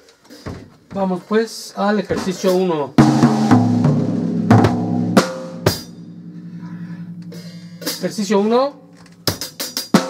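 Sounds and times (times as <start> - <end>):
drum kit strikes: 2.2 - 10.0.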